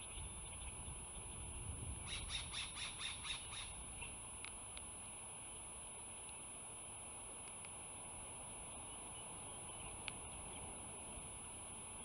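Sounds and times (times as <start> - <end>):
eagle chittering call: 2.0 - 3.8.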